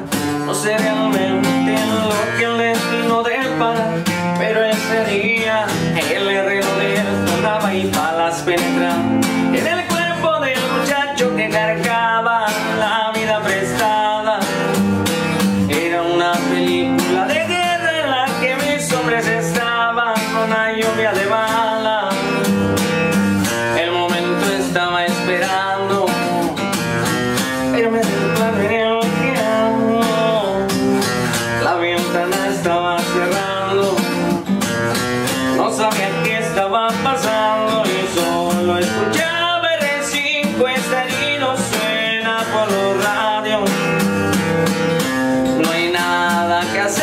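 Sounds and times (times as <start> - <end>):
acoustic guitar strumming: 0.0 - 47.0
man singing: 0.0 - 47.0.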